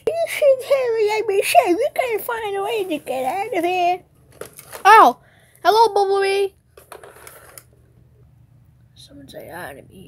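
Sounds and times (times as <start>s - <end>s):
faint clicks and rustles: 1.9s - 4.9s, 6.7s - 7.8s.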